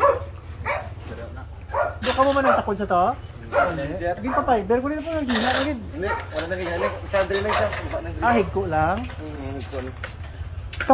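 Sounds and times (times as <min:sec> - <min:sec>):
dog barking: 0:00.0 - 0:01.0, 0:01.6 - 0:02.8, 0:03.5 - 0:04.7, 0:06.0 - 0:07.3.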